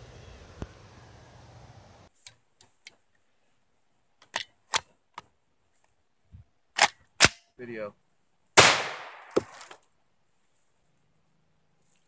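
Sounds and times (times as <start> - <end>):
gunshot: 8.6 - 9.6
sharp crack: 8.6 - 9.8.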